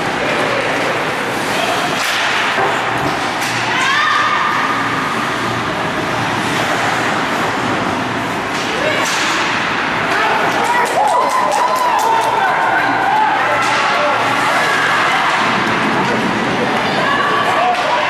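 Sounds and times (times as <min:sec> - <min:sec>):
hockey sticks and puck clacking: 0:00.1 - 0:04.6, 0:06.4 - 0:16.8, 0:17.4 - 0:18.0.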